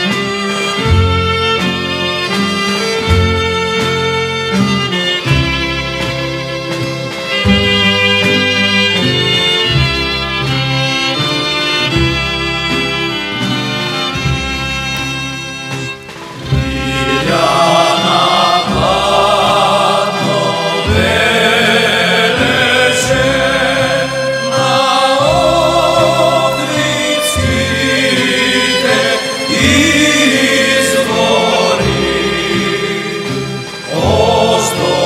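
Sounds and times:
folk band of lutes and violin: 0.0s - 35.0s
group of men singing folk song: 16.8s - 35.0s.

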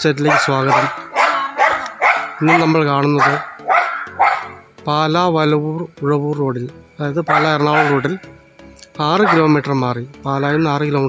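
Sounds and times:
man talking in low voice: 0.0s - 1.0s, 2.4s - 3.6s, 4.8s - 8.2s, 9.0s - 11.0s.

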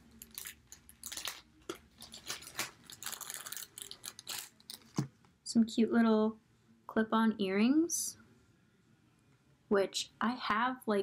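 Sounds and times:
plastic bag crinkling: 0.0s - 5.1s.

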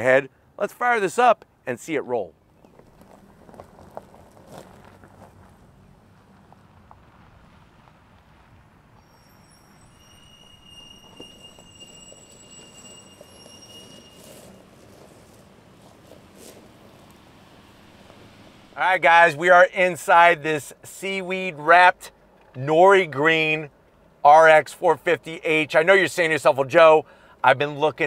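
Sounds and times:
tyres crunching over gravel: 2.6s - 19.3s
thin high steady tones: 9.0s - 15.6s.

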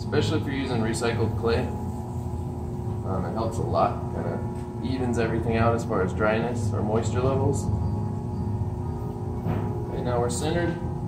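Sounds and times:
faint steady whine: 0.0s - 11.0s
pottery wheel motor hum: 0.0s - 11.0s.

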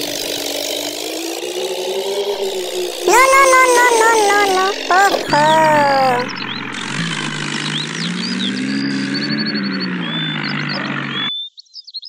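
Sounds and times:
birds chirping: 2.4s - 11.3s
tractor engine running: 6.3s - 8.0s.

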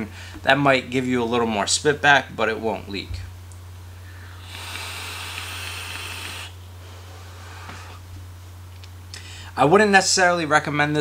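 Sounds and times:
air hissing through vape: 4.2s - 6.6s.

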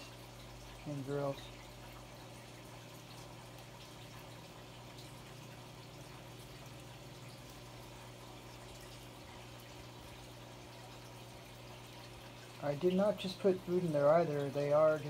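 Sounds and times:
low hum of filters: 0.0s - 15.0s
water trickling with drips: 0.0s - 15.0s.

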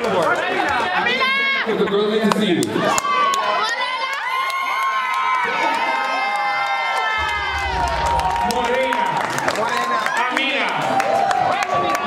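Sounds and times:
crowd cheering and shouting: 2.8s - 12.0s.

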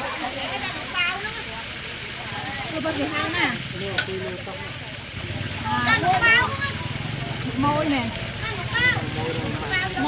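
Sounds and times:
oil sizzling: 0.0s - 10.0s.

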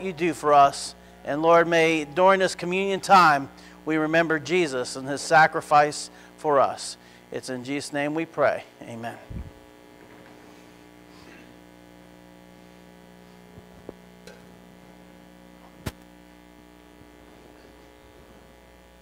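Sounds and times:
electrical mains hum: 0.0s - 19.0s.

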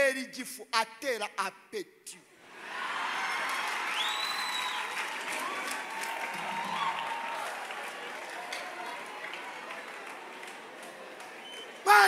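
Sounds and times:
high drawn-out crowd calls: 2.4s - 12.0s
congregation applauding: 2.6s - 12.0s.

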